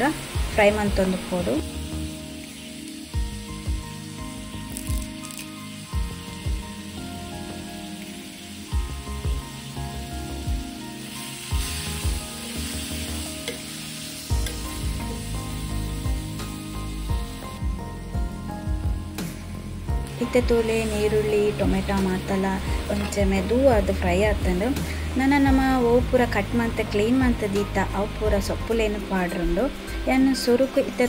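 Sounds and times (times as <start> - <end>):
onions sizzling in oil: 0.0 - 31.0.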